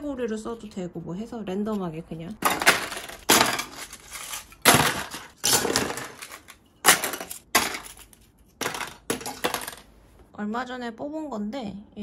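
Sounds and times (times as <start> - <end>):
plastic pieces clattering into boxes: 2.4 - 9.9.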